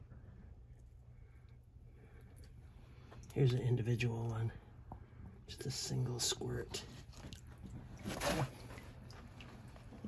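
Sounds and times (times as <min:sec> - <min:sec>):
water splashing and dripping: 0:07.0 - 0:10.0.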